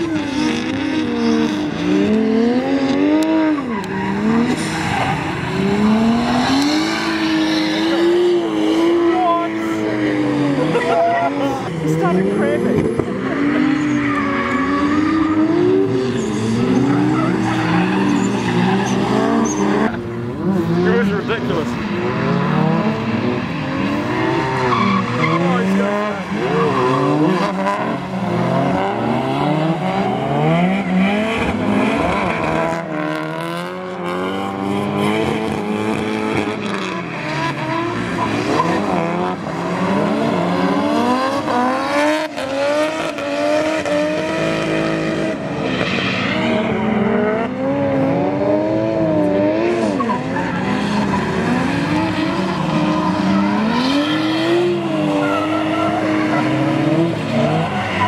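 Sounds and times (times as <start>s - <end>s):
car engines revving: 0.0s - 58.0s
tyres skidding: 0.0s - 58.0s.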